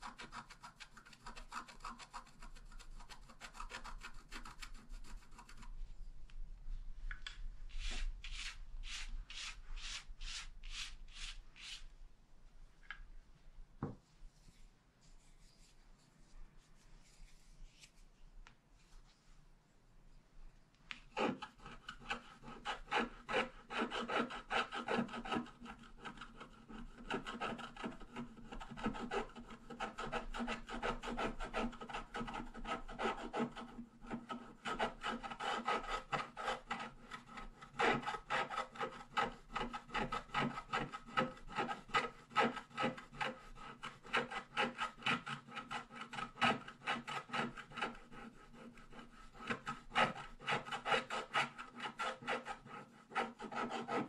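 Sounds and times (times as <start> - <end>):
stylus scraping scratch card: 7.7 - 11.9.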